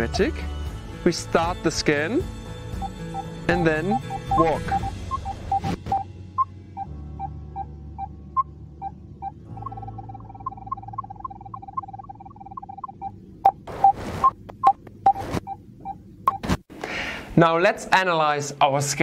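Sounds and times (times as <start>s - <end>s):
short electronic beeps: 2.8s - 16.4s
low steady hum: 2.8s - 17.4s.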